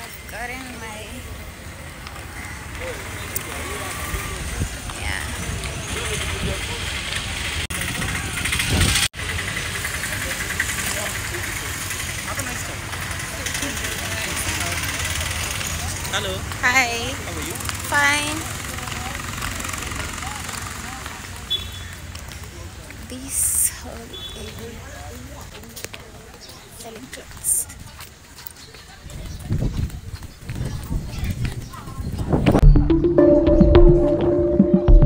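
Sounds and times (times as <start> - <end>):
traffic hum: 0.0 - 33.0
crowd noise: 0.0 - 35.0.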